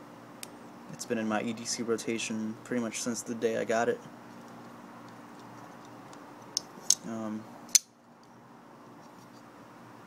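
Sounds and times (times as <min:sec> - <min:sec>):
faint background hum: 0:00.0 - 0:10.0.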